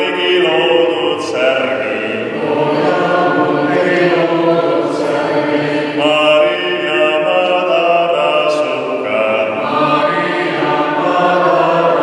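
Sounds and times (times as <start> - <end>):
group singing a slow hymn: 0.0 - 12.0.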